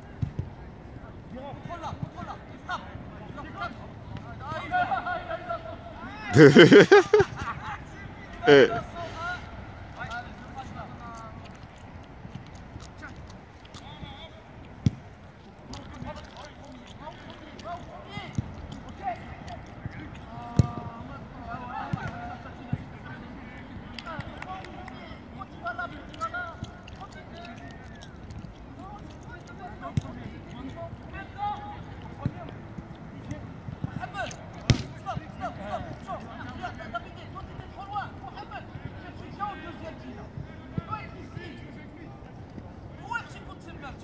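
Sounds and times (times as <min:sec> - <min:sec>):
distant players' voices: 0:00.0 - 0:44.0
footballs being kicked: 0:14.7 - 0:16.0, 0:19.9 - 0:21.1, 0:32.0 - 0:36.0
football kick thud: 0:34.6 - 0:35.1.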